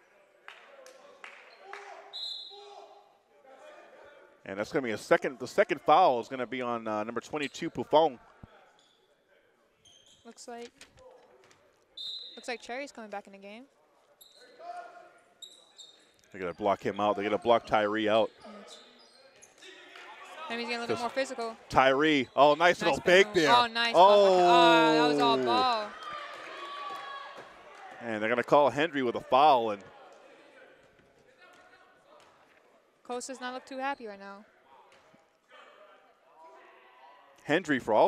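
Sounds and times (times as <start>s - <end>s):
echoing voices in a gym: 0.0s - 38.0s.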